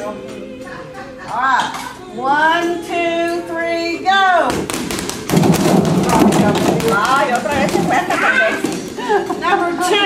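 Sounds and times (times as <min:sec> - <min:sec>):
people talking and laughing: 0:00.0 - 0:04.3, 0:06.0 - 0:10.0
balls knocking plastic buckets: 0:04.5 - 0:09.0
rubber balls bouncing on floor: 0:04.5 - 0:09.2.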